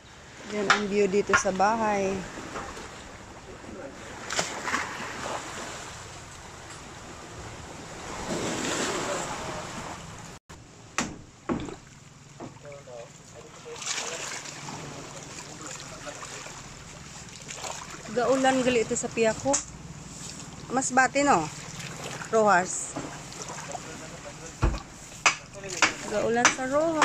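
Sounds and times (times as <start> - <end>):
small waves washing on shore: 0.1 - 10.4, 11.8 - 27.0.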